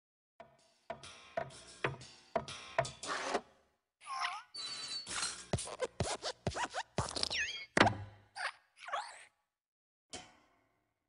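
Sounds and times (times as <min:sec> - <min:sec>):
metallic spring squeaks: 0:04.5 - 0:05.5.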